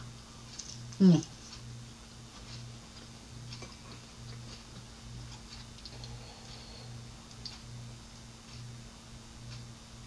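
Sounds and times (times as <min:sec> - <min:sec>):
low pulsing hum: 0:00.0 - 0:10.0
person chewing food: 0:02.4 - 0:07.6.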